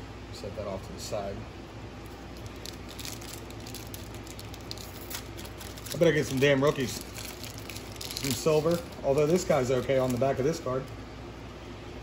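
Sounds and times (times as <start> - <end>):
foil wrapper crinkling: 2.2 - 10.9.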